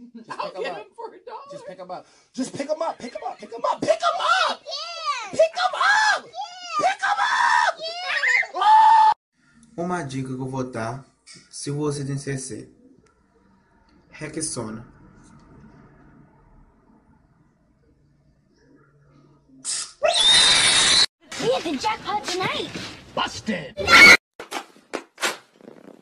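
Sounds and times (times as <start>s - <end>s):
person screaming in panic: 5.5s - 9.2s.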